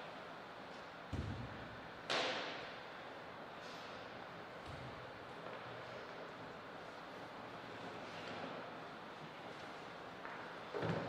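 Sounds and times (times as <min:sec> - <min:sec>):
steady hall hiss: 0:00.0 - 0:11.0.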